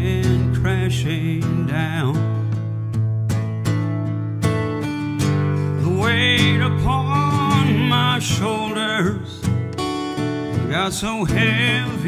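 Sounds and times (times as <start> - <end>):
man singing: 0.0 - 2.6, 5.8 - 9.6, 10.5 - 12.0
acoustic guitar strumming: 0.0 - 12.0.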